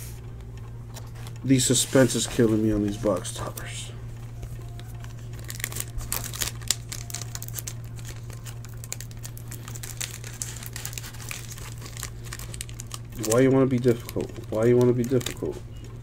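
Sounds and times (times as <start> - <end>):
plastic wrapping crinkling: 0.9 - 3.7, 4.4 - 16.0.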